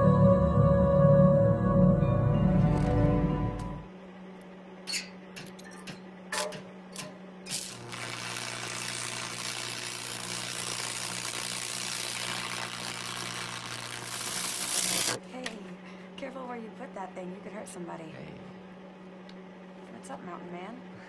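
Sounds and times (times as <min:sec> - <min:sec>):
low electrical hum: 0:00.0 - 0:21.0
welding arc crackling and buzzing: 0:06.4 - 0:15.2.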